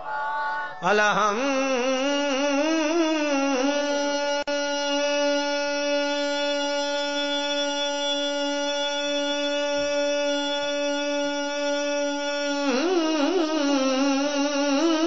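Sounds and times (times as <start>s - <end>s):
man singing a long note: 0.8s - 15.0s.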